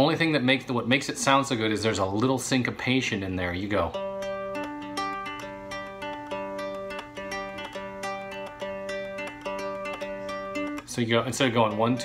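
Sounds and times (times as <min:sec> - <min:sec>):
cigar box guitar picked fingerstyle: 0:03.8 - 0:12.0.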